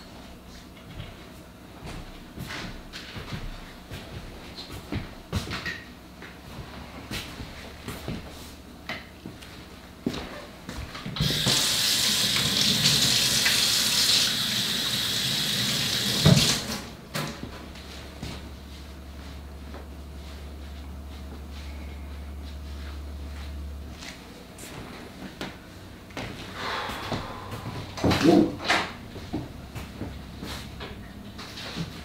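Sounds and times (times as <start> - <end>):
kitchen tap running: 11.2 - 16.9.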